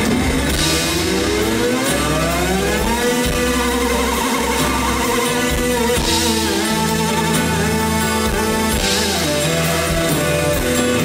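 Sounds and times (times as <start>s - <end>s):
low bass drone: 0.0s - 11.0s
synthesizer tone gliding upward: 0.0s - 11.0s.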